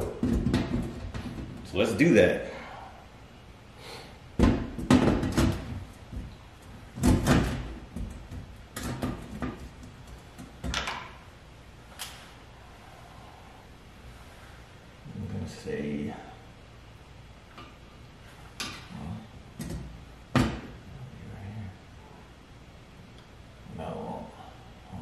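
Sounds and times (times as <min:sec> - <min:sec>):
hollow knocks of sheet-metal duct: 0:00.0 - 0:01.7, 0:04.4 - 0:11.1.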